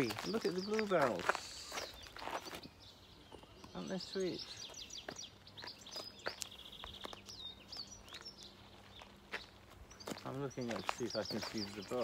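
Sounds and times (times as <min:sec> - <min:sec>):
small songbirds singing: 0:00.0 - 0:12.0.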